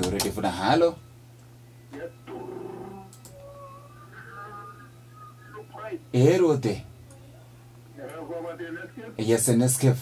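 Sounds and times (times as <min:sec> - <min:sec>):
low steady hum: 0:00.0 - 0:10.0
faint held pitched tones: 0:00.9 - 0:08.0.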